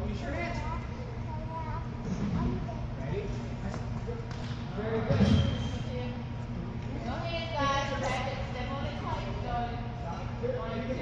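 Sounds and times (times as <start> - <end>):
children's voices: 0.6 - 3.0.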